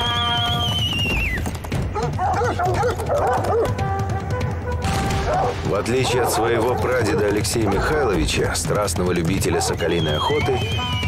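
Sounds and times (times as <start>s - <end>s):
high whistling tone: 0.0s - 1.5s, 9.8s - 11.0s
background music: 0.0s - 11.0s
hunting dogs yelping and barking: 1.9s - 3.8s, 5.2s - 8.2s, 9.4s - 10.6s.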